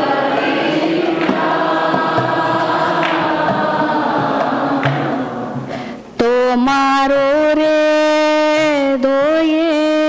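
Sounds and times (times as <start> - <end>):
group singing devotional song: 0.0 - 7.4
light drum strokes: 1.2 - 6.0.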